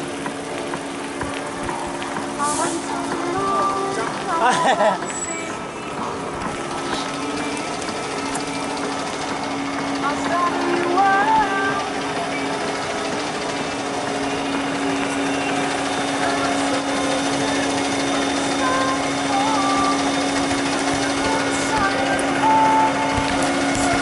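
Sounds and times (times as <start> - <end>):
concrete mixer truck humming: 0.0 - 24.0
distant voices: 0.0 - 24.0.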